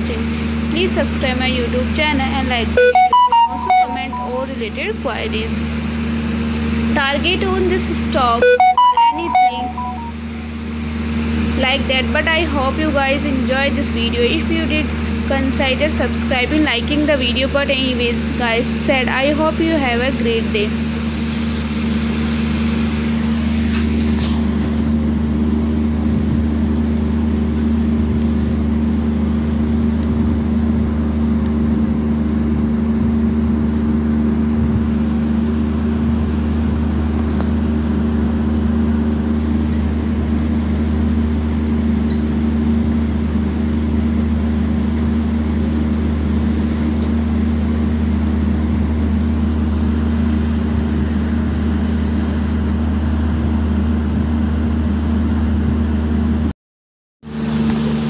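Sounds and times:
machine low hum: 0.0s - 54.9s.

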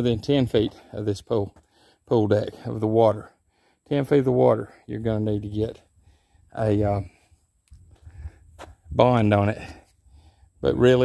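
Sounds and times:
man speaking: 0.0s - 5.8s, 6.5s - 7.2s, 8.9s - 9.9s, 10.6s - 11.0s.

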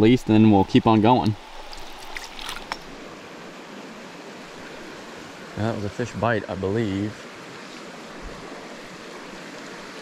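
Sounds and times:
creek water running: 0.0s - 10.0s
light water splashes and drips: 1.0s - 3.2s, 7.2s - 10.0s.

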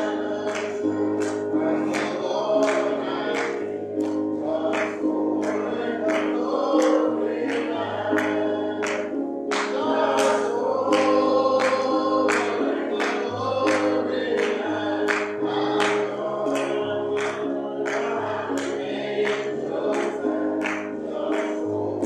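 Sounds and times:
choir singing gospel: 0.0s - 22.0s.

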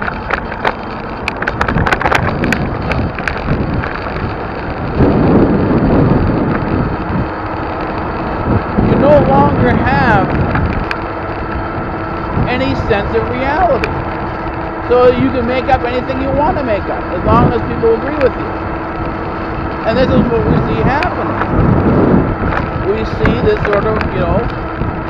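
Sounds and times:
road traffic noise: 0.0s - 25.0s
wind on microphone: 0.0s - 25.0s.

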